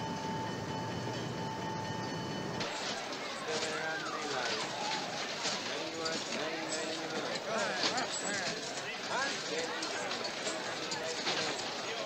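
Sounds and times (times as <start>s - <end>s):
crowd chatter: 0.0s - 12.0s
light clicks and clatter: 2.6s - 12.0s.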